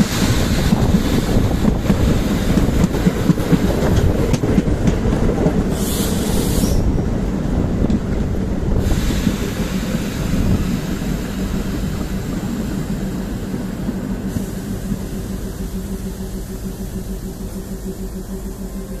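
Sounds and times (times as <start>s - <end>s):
diesel locomotive rumbling: 0.0s - 19.0s.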